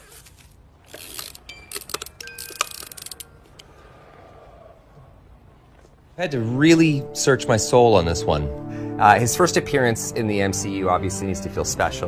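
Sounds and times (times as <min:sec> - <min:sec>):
sharp clicks and clinks: 0:00.9 - 0:03.4
faint hum: 0:01.5 - 0:10.5.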